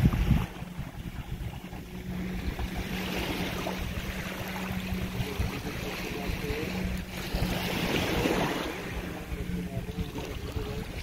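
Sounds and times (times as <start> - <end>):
steady low hum: 0.0 - 11.0
water lapping in shallows: 0.0 - 11.0
wind noise on microphone: 0.0 - 11.0.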